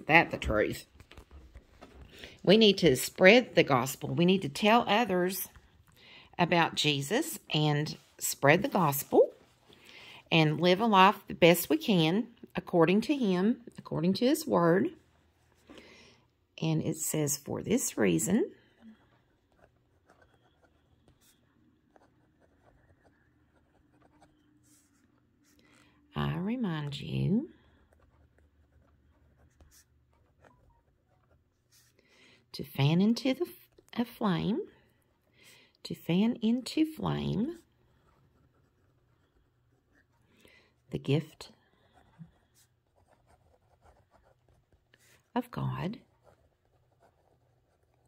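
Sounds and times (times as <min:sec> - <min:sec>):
pen scratching on paper: 0:17.7 - 0:32.0, 0:36.1 - 0:40.4, 0:41.0 - 0:48.0.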